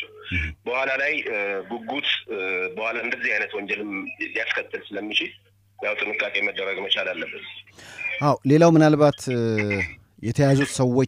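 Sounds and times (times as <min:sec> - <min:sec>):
person talking phone-like voice: 0:00.0 - 0:00.6, 0:01.2 - 0:08.4, 0:09.1 - 0:10.9.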